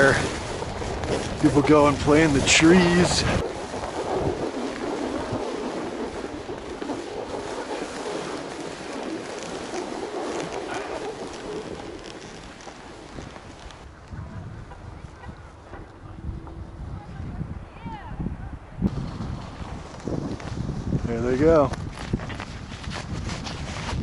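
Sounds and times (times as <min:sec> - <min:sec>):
skis scraping over snow: 0:00.0 - 0:14.2, 0:18.9 - 0:24.0
wind rushing on microphone: 0:00.0 - 0:24.0.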